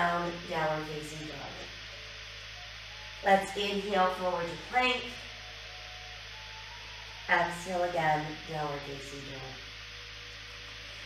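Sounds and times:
low electrical hum: 0:00.0 - 0:11.0
steady hiss: 0:00.0 - 0:11.0.

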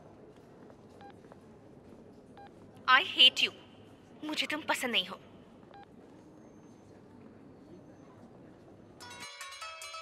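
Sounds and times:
recorded woman's voice: 0:02.9 - 0:03.6, 0:04.2 - 0:05.2.

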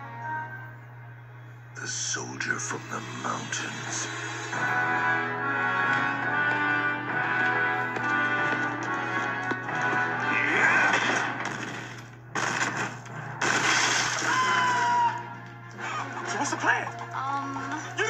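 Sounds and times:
dramatic orchestral music: 0:02.6 - 0:18.0
loud crashing sound effects: 0:10.9 - 0:14.8.

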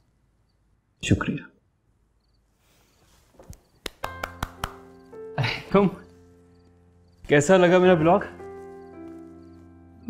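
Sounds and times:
person clapping: 0:03.4 - 0:04.9
soft background music: 0:04.0 - 0:10.0.

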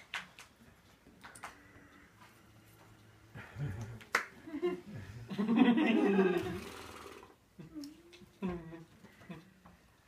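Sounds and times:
hands smacking: 0:00.0 - 0:00.6, 0:03.8 - 0:04.4.

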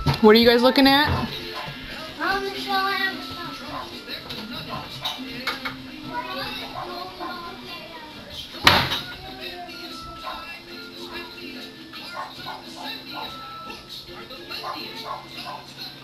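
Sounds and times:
children chattering: 0:01.2 - 0:16.0.

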